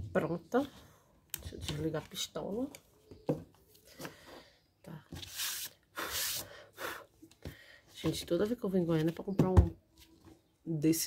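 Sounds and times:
hissy breath out: 5.9 - 7.9.

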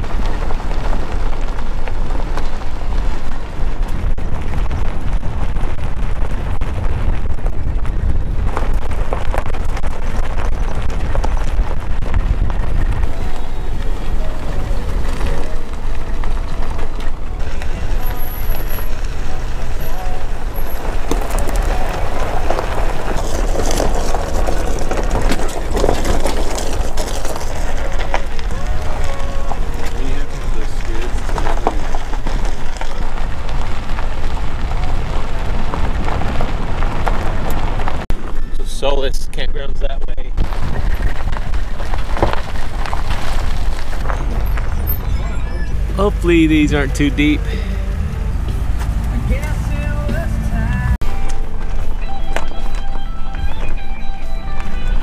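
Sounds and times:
wind noise on microphone: 0.0 - 38.7, 39.4 - 55.0
tyre and engine rumble: 0.0 - 55.0.

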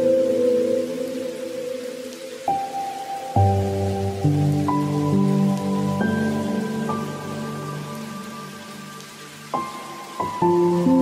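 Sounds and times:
rain hiss: 0.0 - 11.0
soft music of held chords: 0.0 - 11.0.

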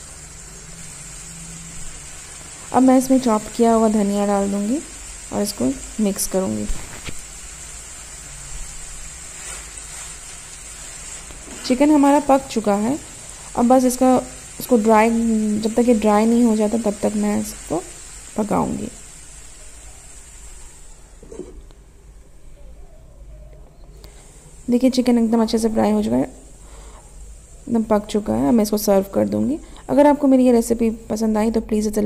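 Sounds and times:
chicken sizzling in a frying pan: 0.0 - 21.4, 24.1 - 32.0.

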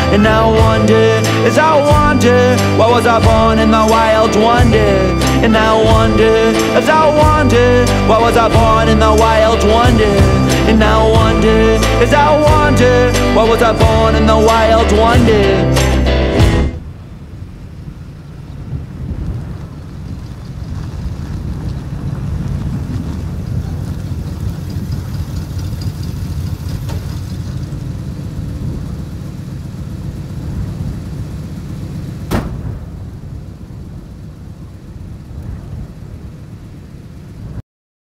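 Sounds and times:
pickup truck engine rumble: 0.0 - 37.6.

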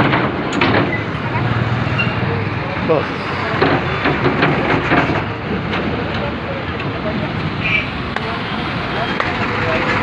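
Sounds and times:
vehicle rumble: 0.0 - 10.0.

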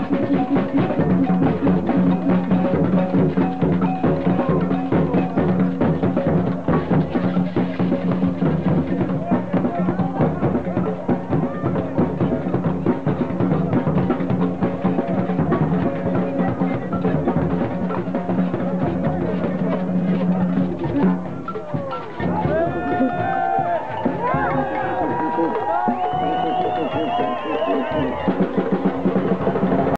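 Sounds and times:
drums beaten in fast rhythm: 0.0 - 29.9
voices calling out: 0.0 - 29.9.

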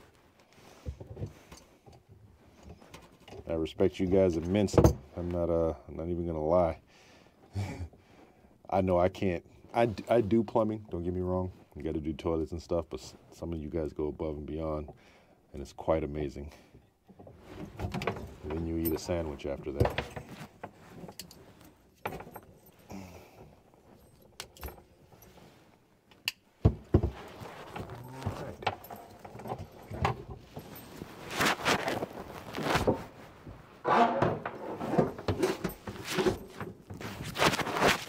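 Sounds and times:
metal hoses and fittings rattling: 17.1 - 25.6, 26.9 - 38.0.

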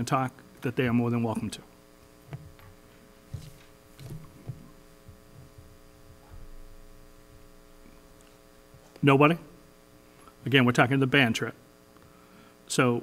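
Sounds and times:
electrical mains hum: 0.0 - 13.0
faint low thuds: 2.3 - 7.7.

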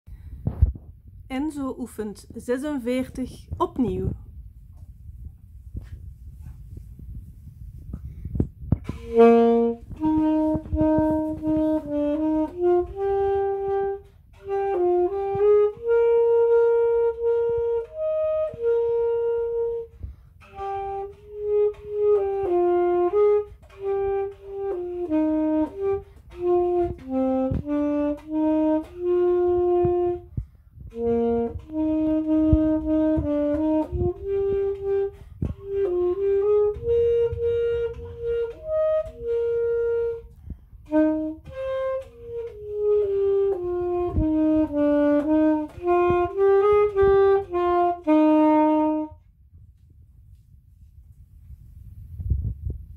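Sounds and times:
alto saxophone melody: 8.7 - 49.4.

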